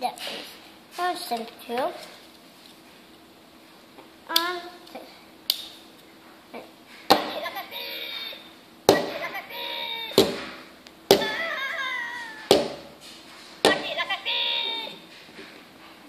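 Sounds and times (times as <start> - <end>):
pitched speech-like toy sound: 6.6 - 10.2, 13.7 - 15.0.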